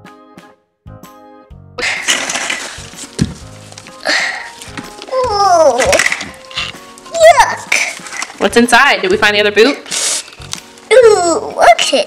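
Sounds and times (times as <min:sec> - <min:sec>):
tinkly background music: 0:01.9 - 0:11.2
plastic toy capsule crackling rustle: 0:02.0 - 0:08.4.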